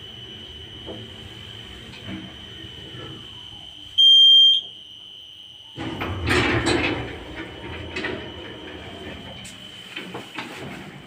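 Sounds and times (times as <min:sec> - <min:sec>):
sliding doors opening: 0:00.0 - 0:03.7, 0:05.8 - 0:11.0
high-pitched lift beep: 0:04.0 - 0:04.7.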